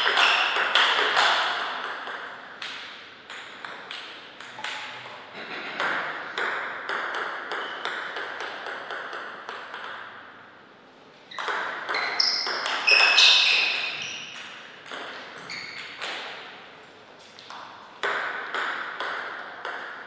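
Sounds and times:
ball bouncing on table: 0:00.0 - 0:10.2, 0:11.3 - 0:16.4, 0:17.5 - 0:20.0
ball clicking off paddles: 0:00.0 - 0:10.2, 0:11.3 - 0:16.4, 0:17.4 - 0:20.0.

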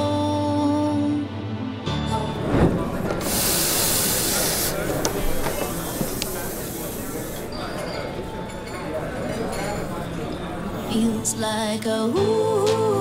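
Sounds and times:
background chatter: 0:02.1 - 0:12.2
steam wand hissing: 0:03.1 - 0:07.9
cups clinking: 0:03.2 - 0:11.0.

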